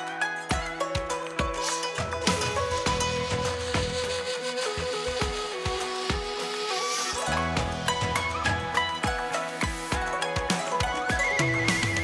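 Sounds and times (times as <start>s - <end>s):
horsehead fiddle: 0.0s - 12.0s
regular drum beats: 0.0s - 12.0s
wooden flute: 0.0s - 12.0s.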